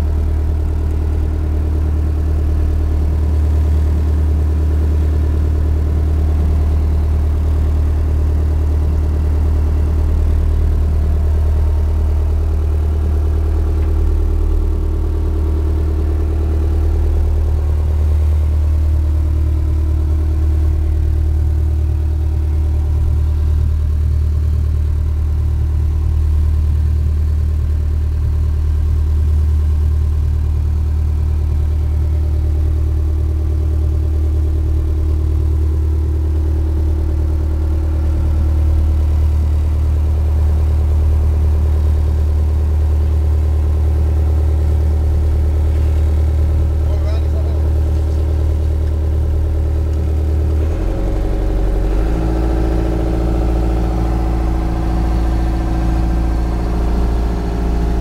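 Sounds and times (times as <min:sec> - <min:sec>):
diesel engine low hum: 0:00.0 - 0:58.0.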